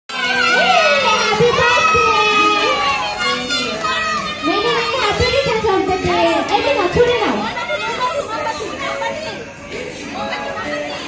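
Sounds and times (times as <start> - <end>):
background music: 0.1 - 11.0
crowd calling out excitedly: 0.1 - 11.0.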